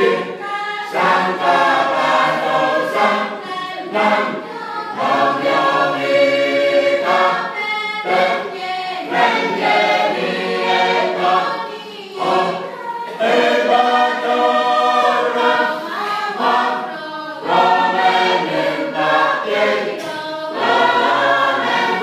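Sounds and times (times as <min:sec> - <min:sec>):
mixed choir singing a hymn: 0:00.0 - 0:22.0.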